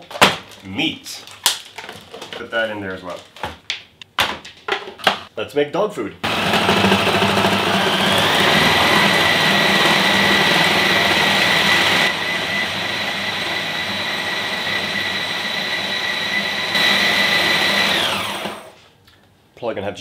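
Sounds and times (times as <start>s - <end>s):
food processor motor chopping: 6.2s - 18.8s
high motor whine: 6.3s - 18.7s.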